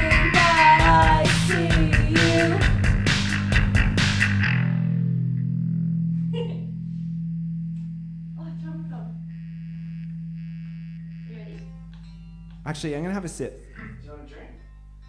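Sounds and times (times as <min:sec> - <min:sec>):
guitar and bass chord ringing: 0:00.0 - 0:15.0.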